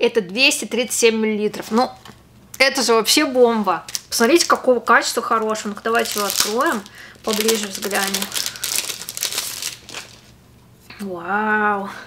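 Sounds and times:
packaging crinkling and rustling: 0:03.8 - 0:10.4.

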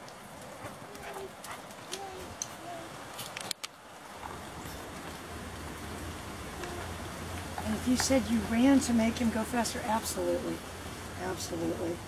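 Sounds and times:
dog paws tapping on concrete: 0:00.0 - 0:05.7, 0:06.6 - 0:09.3.

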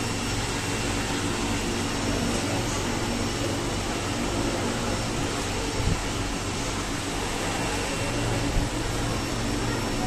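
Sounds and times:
ventilation hum and hiss: 0:00.0 - 0:10.0.

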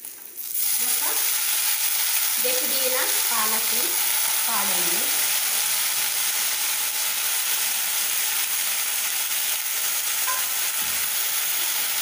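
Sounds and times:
spinach frying sizzle: 0:00.0 - 0:12.0.

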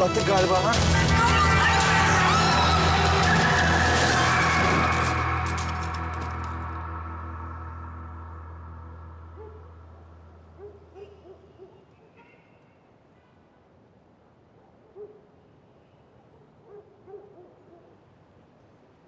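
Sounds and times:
low music drone: 0:00.0 - 0:10.5.

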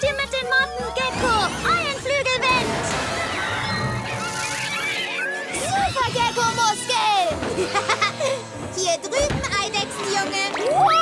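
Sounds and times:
action background music: 0:00.0 - 0:11.0.

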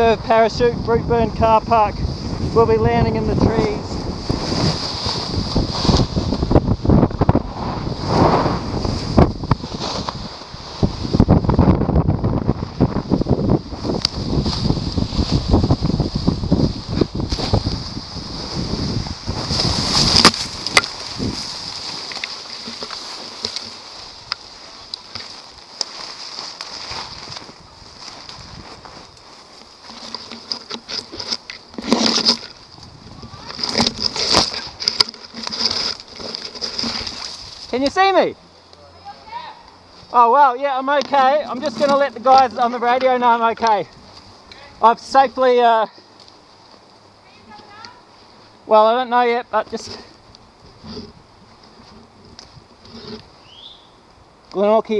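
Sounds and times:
wind rushing over microphone: 0:00.0 - 0:22.9, 0:26.9 - 0:29.2, 0:31.8 - 0:38.4
foliage rustling and scraping: 0:00.0 - 0:54.9
branches snapping: 0:13.9 - 0:16.1, 0:18.9 - 0:38.0.

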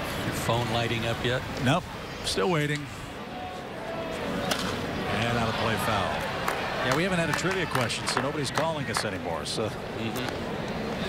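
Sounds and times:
crowd murmur: 0:02.8 - 0:11.0.

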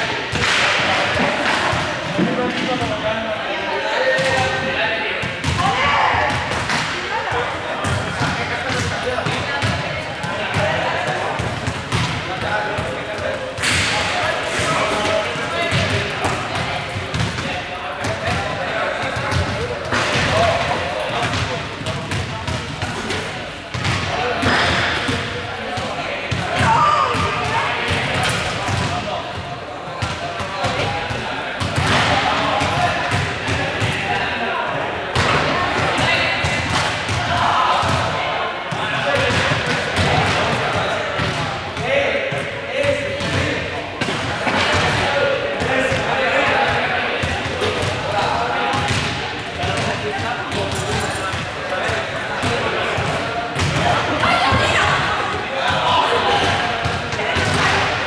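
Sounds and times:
balls bouncing on hall floor: 0:00.0 - 0:03.2, 0:04.0 - 0:58.0
players shouting and chattering: 0:00.0 - 0:58.0.

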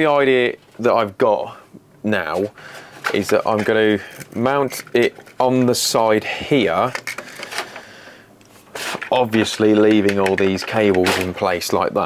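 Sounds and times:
cables and plastic rubbing: 0:02.3 - 0:12.0.

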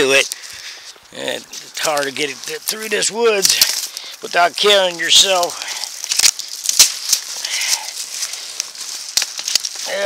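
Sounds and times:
footsteps crunching dry leaves: 0:00.0 - 0:10.0
twigs and brush crackling: 0:00.0 - 0:10.0
twigs snapping: 0:01.6 - 0:10.0.

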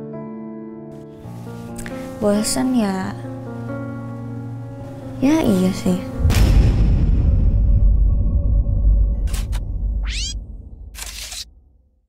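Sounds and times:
low bass background music: 0:01.1 - 0:11.4
sharp clicks: 0:11.0 - 0:11.5.

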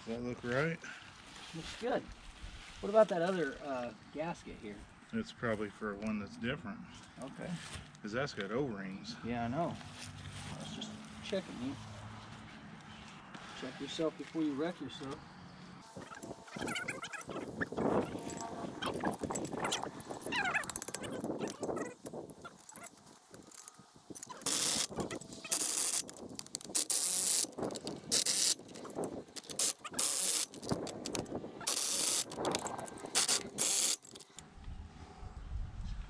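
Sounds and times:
ratchet wrench clicking: 0:17.4 - 0:34.4.

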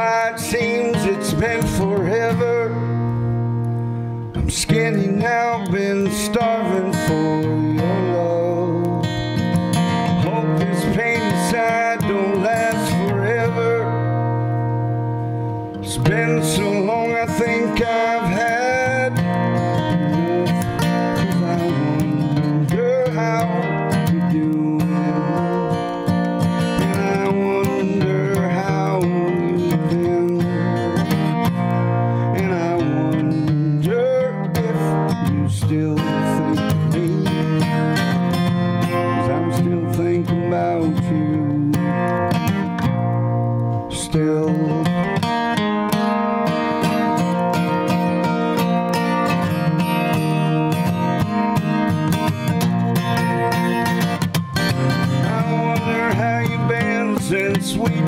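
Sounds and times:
man singing: 0:00.0 - 0:03.3, 0:04.3 - 0:14.3, 0:15.7 - 0:42.8, 0:43.7 - 0:58.0
acoustic guitar strumming: 0:00.0 - 0:58.0.

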